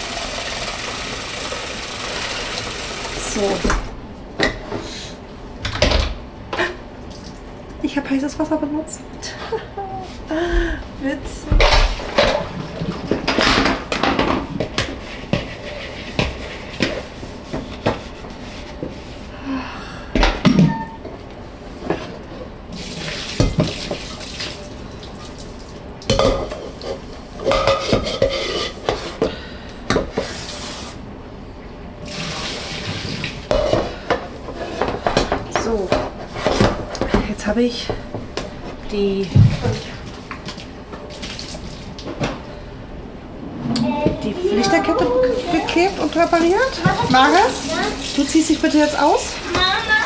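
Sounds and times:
running tap water: 0:00.0 - 0:03.9, 0:22.7 - 0:25.8, 0:32.0 - 0:33.5, 0:44.4 - 0:50.0.

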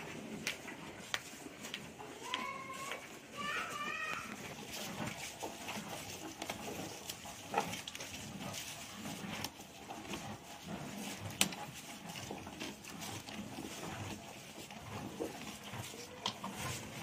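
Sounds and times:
low cow sounds: 0:02.0 - 0:09.4, 0:13.6 - 0:17.0.

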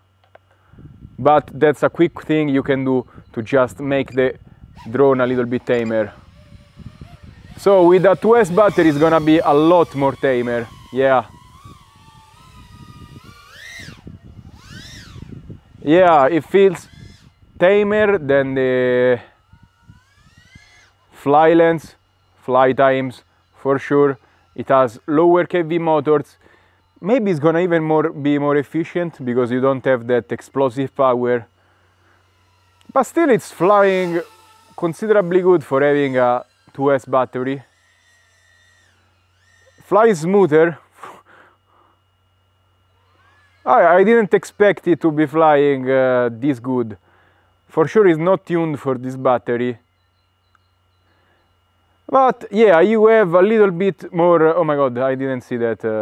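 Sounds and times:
drone motors whining: 0:00.0 - 0:56.0.

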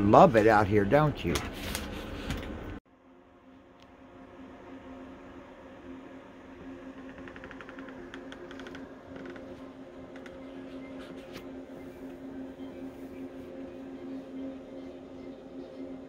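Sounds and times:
faint mechanical hum: 0:00.0 - 0:16.0.

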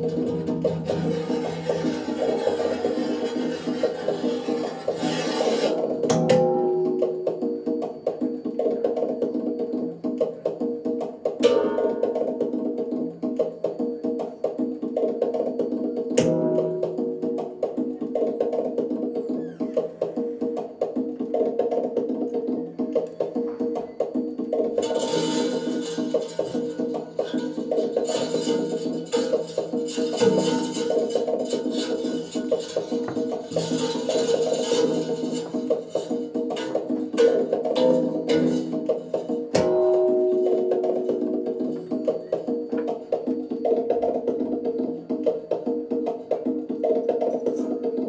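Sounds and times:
sustained overlapping tones: 0:00.0 - 0:08.2, 0:24.4 - 0:44.6.

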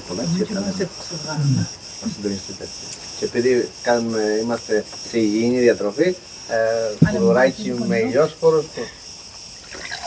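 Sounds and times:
cicadas chorus: 0:00.0 - 0:10.0
man speaking: 0:06.6 - 0:08.9.

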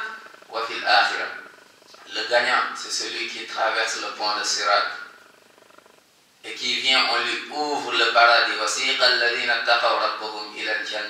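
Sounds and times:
man chanting melodically: 0:00.0 - 0:05.2, 0:06.4 - 0:11.0.

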